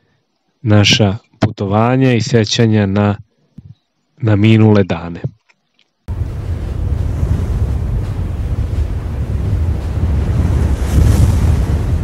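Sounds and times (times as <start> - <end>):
rumbling whoosh: 6.1 - 12.0.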